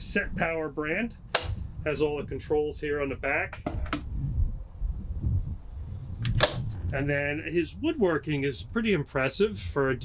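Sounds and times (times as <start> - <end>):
low rumbling handling noise: 0.0 - 9.0.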